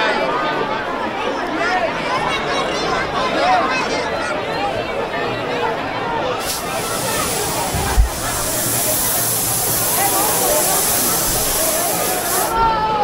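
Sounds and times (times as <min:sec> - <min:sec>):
crowd voices: 0:00.0 - 0:13.0
fireworks hissing: 0:06.4 - 0:12.6
thump: 0:07.7 - 0:08.2.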